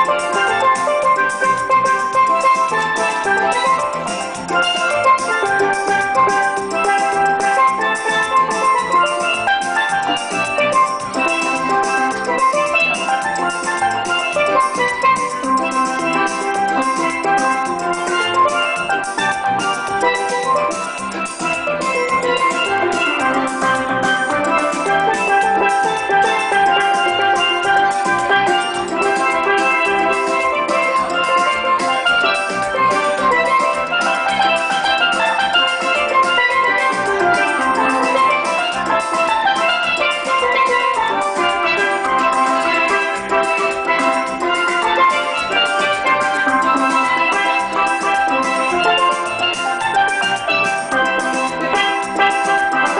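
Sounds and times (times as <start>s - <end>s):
drums keeping a beat: 0.0s - 52.9s
steelpans playing melody: 0.0s - 52.9s.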